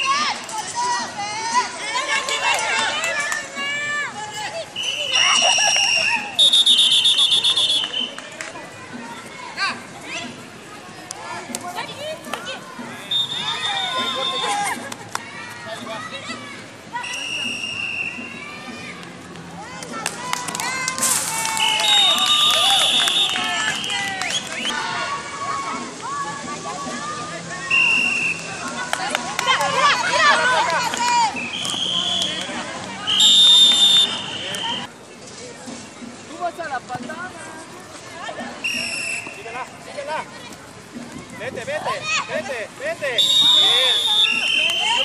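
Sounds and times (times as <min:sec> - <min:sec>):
players calling: 0:00.0 - 0:08.3, 0:09.6 - 0:19.1, 0:20.4 - 0:34.9, 0:41.7 - 0:45.0
referee's whistle blowing: 0:04.8 - 0:08.2, 0:13.0 - 0:14.6, 0:17.0 - 0:18.4, 0:21.6 - 0:24.7, 0:27.7 - 0:28.5, 0:31.3 - 0:32.5, 0:33.1 - 0:34.9, 0:38.6 - 0:39.4, 0:43.2 - 0:45.0.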